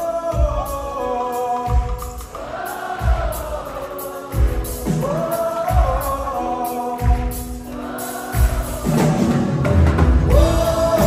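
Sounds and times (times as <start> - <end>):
live band playing pop song: 0.0 - 11.0
person singing: 0.0 - 11.0
deep drum beat: 0.2 - 1.1, 1.7 - 6.4, 8.4 - 11.0.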